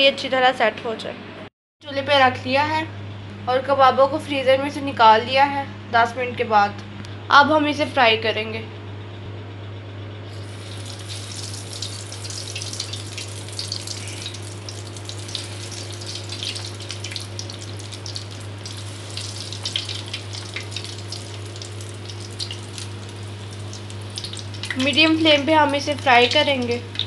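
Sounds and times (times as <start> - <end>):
steady low hum: 0.0 - 27.0
food sizzling in hot oil: 10.3 - 27.0.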